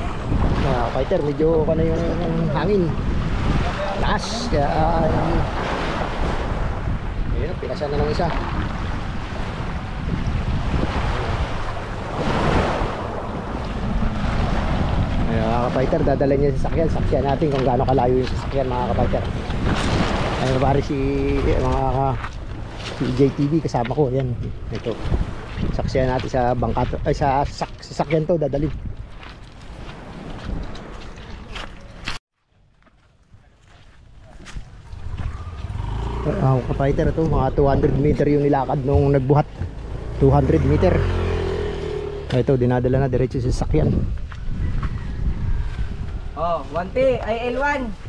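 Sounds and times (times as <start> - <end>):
wind buffeting microphone: 0.0 - 32.2, 34.4 - 48.0
small waves washing in: 2.0 - 16.7, 18.4 - 23.8, 24.5 - 25.8
footsteps crunching on pebbles: 27.6 - 35.8.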